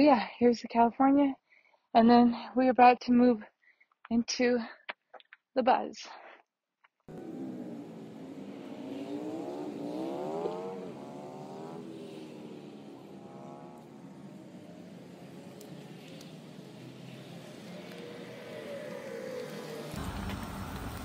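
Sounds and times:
vehicle accelerating: 7.1 - 21.0
faint clicks: 15.6 - 16.4.

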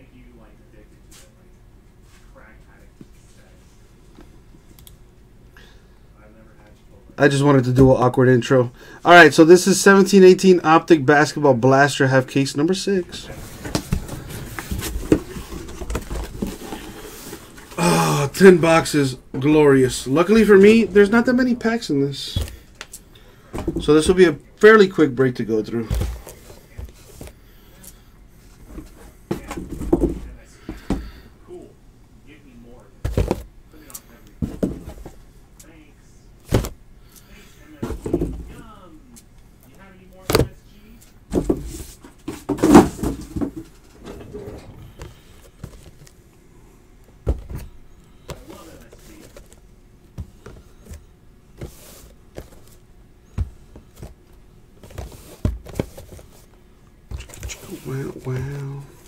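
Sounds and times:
cardboard rustling and scraping: 13.1 - 17.8, 25.8 - 27.4, 33.1 - 33.5, 34.4 - 35.2, 41.3 - 46.2, 47.3 - 49.6, 50.2 - 52.8, 53.4 - 54.2, 54.8 - 59.0
cardboard boxes knocking on table: 23.6 - 24.2, 29.3 - 31.1, 33.0 - 33.5, 34.4 - 35.1, 37.8 - 38.6, 41.3 - 43.7.

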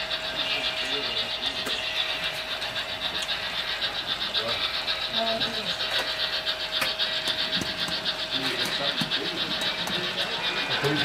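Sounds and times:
model steam locomotive chuffing: 0.0 - 11.0.

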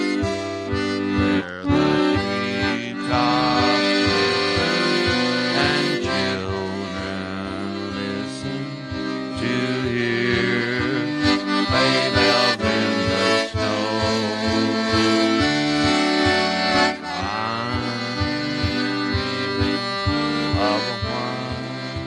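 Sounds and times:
accordion melody with chords: 0.0 - 22.0.

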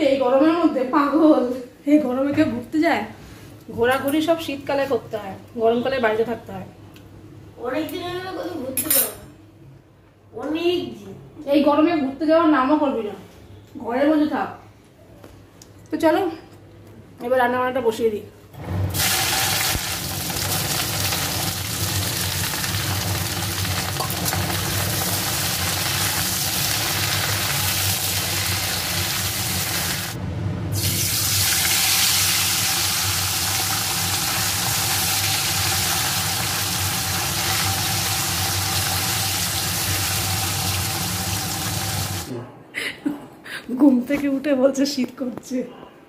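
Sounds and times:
food sizzling in hot oil: 18.9 - 30.2, 30.8 - 42.3.

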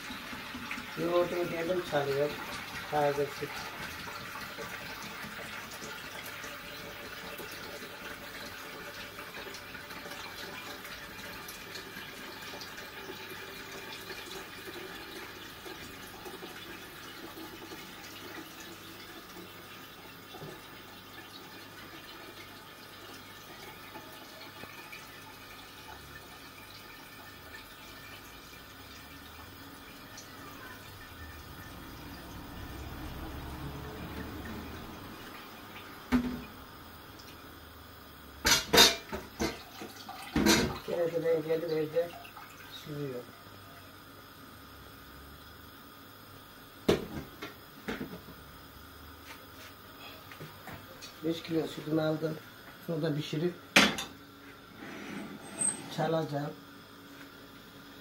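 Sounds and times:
liquid trickling into a pot: 0.0 - 44.3.

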